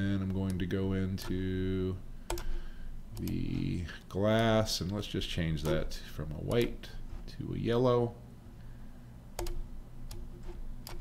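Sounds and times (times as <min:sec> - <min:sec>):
computer mouse clicks: 0:02.3 - 0:02.6, 0:09.4 - 0:11.0.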